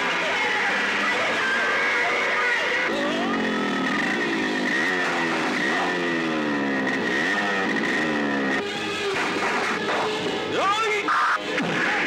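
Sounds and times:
motorcycle engine revving: 0.0 - 10.6.

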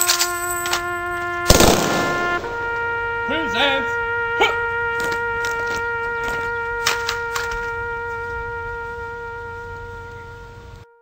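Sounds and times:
wind instrument long note: 0.0 - 11.0.

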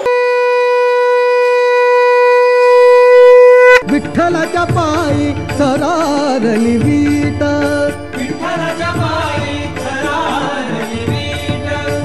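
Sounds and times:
conch shell blown: 0.0 - 3.9.

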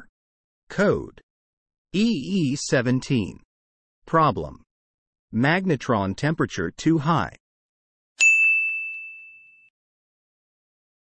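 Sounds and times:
bright bell ding: 8.2 - 9.7.

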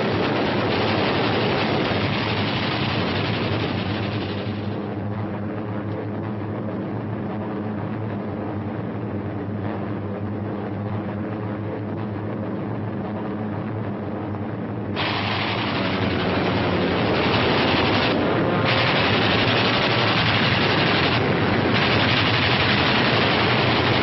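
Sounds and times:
harsh rushing noise: 0.0 - 4.8, 14.9 - 24.0
piston aircraft engines droning: 0.0 - 24.0.

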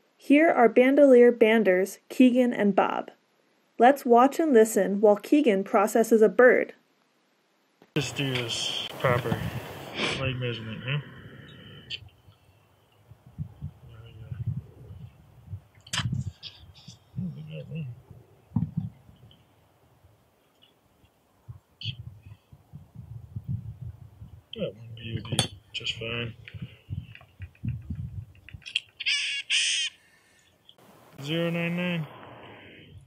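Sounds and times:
bird harsh nasal calls: 11.0 - 12.7, 15.9 - 18.0, 28.6 - 32.8
sharp click: 15.8 - 16.2.

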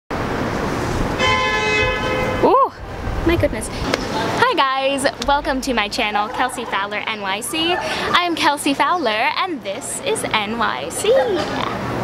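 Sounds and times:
street traffic: 0.1 - 12.0
long vehicle horn honk: 1.2 - 2.6.

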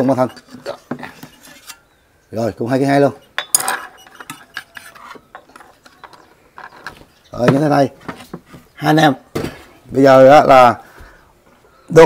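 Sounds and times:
metal platter clinking: 3.2 - 7.0.

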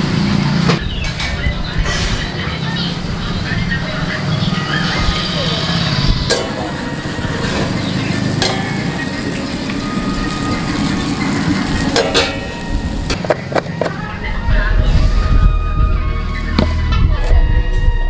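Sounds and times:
steady low rumble: 0.8 - 18.0
bread sizzling on a hot griddle: 6.5 - 13.2.

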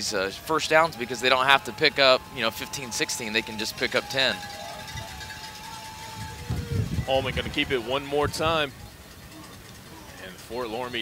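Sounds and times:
low rumbling: 4.4 - 9.8.

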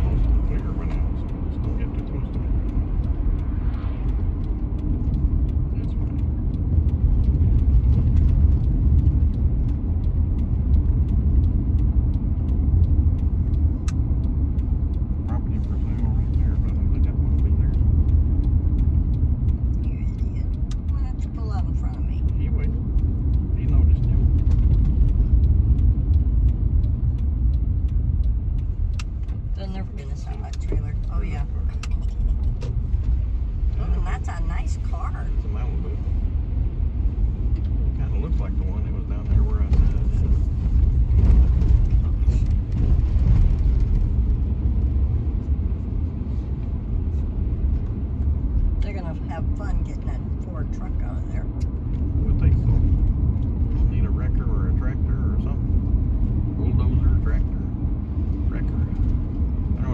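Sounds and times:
car tyres and engine rumble: 0.0 - 59.9.

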